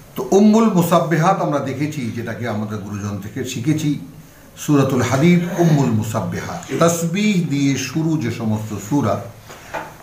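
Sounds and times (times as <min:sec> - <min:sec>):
man talking: 0:00.2 - 0:09.4.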